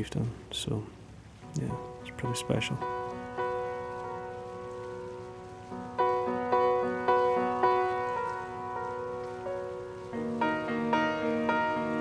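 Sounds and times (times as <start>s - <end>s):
faint hiss: 0.0s - 12.0s
upright piano playing slowly: 0.0s - 12.0s.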